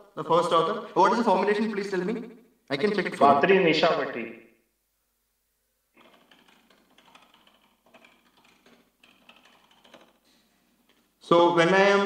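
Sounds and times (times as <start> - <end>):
faint keyboard typing: 6.0 - 11.1.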